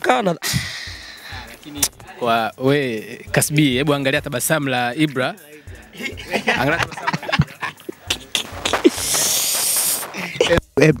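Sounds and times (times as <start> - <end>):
man laughing in breathy bursts: 5.9 - 10.6
hissing exhale: 8.8 - 10.4.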